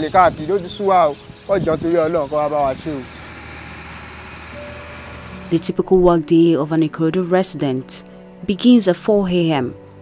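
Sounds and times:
lorry engine humming: 0:00.6 - 0:08.2.

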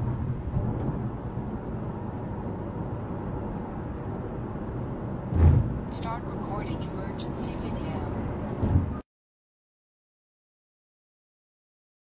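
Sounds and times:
car road and engine noise: 0:00.0 - 0:09.0
low bump: 0:05.2 - 0:06.0
automated voice prompt: 0:05.9 - 0:08.2.

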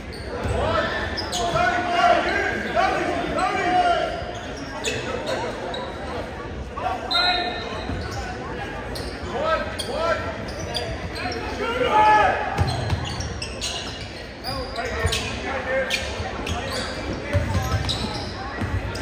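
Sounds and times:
sneakers squeaking: 0:00.0 - 0:11.9, 0:12.5 - 0:19.0
voices echoing in a hall: 0:00.0 - 0:19.0.

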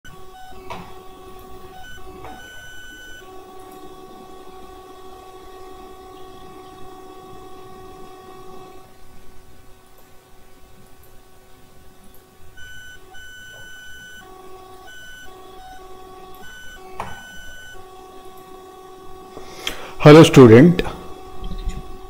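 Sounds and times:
mechanical hum: 0:00.0 - 0:22.0.

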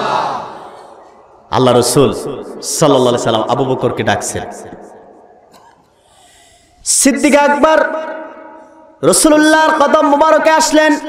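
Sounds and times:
man's sharp intake of breath: 0:05.9 - 0:06.8.

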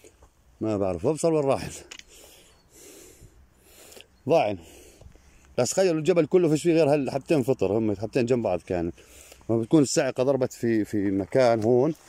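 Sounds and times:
faint breathing: 0:02.0 - 0:05.6, 0:08.9 - 0:09.5.

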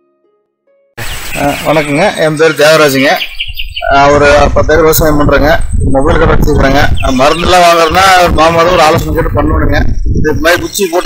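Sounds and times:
bird chirping: 0:01.0 - 0:09.2.

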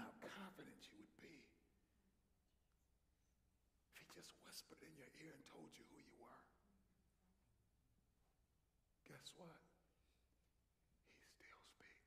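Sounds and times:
faint whispering: 0:03.9 - 0:06.6, 0:09.0 - 0:10.2, 0:11.0 - 0:12.0.

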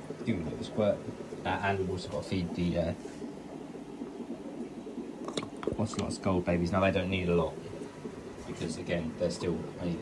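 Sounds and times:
air bubbling through aquarium water: 0:00.0 - 0:10.0.

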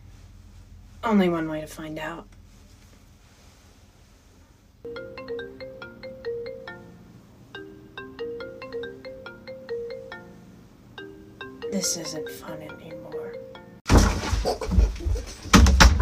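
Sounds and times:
marimba phone ringtone: 0:04.8 - 0:13.9.

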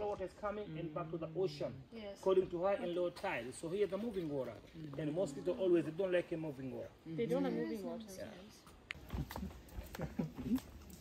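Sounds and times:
person laughing: 0:09.2 - 0:10.8.

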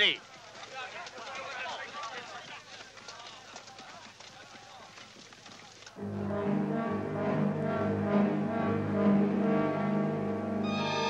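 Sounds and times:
orchestral music with brass chords: 0:06.0 - 0:11.0.

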